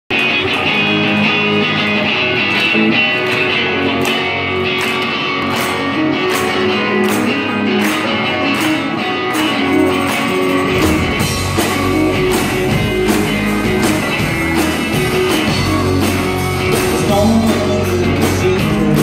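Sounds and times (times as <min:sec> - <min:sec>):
electric guitars: 0:00.1 - 0:19.0
keyboards: 0:00.1 - 0:19.0.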